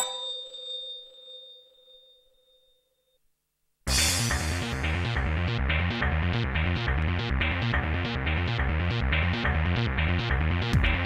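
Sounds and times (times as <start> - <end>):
bell-like chime: 0.0 - 3.2.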